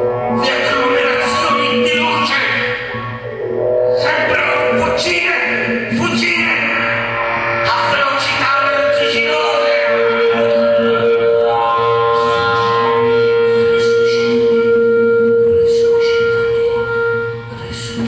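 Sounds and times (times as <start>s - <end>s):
live jazz sustained notes: 0.0s - 18.0s.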